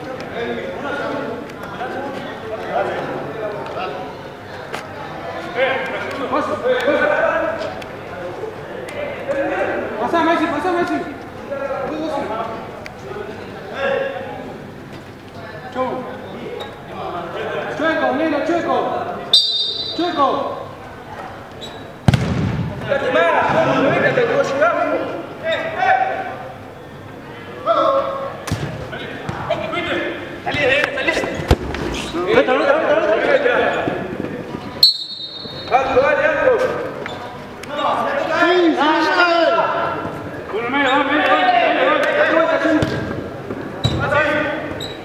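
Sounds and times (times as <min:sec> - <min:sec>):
people talking and calling out: 0:00.0 - 0:45.0
football being kicked: 0:22.1 - 0:22.8.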